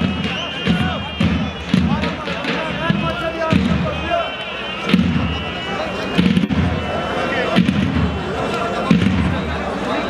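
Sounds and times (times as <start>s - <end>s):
heavy drum beat: 0.0s - 9.6s.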